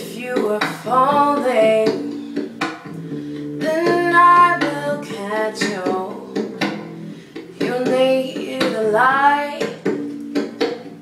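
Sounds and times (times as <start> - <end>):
girl singing pop song: 0.0 - 10.8
plucked acoustic guitar: 0.0 - 11.0.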